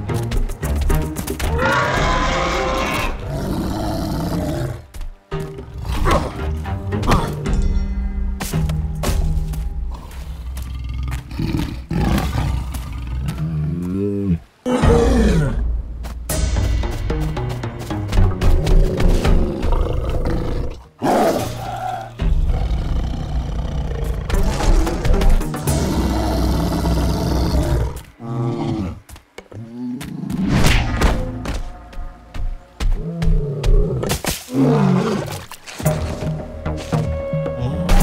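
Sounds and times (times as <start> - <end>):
dinosaur roar: 18.7 - 30.6.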